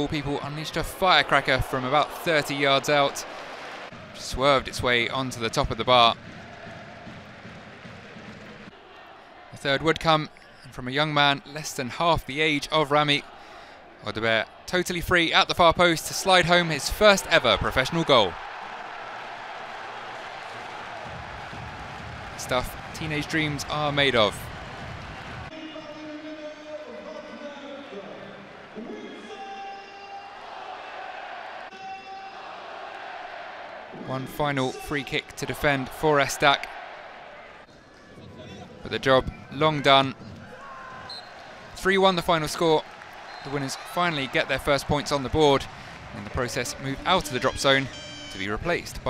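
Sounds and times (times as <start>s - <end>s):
crowd noise: 0.0s - 49.0s.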